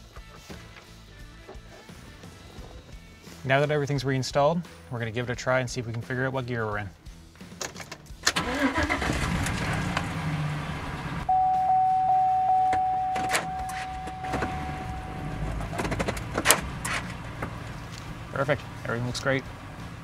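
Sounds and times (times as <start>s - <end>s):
engine cranking and idling: 8.2s - 11.5s, 12.7s - 20.0s
dashboard warning chime: 11.3s - 15.8s.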